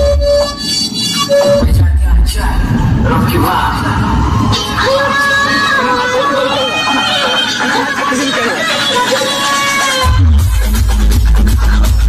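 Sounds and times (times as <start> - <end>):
electronic dj music: 0.0 - 12.0.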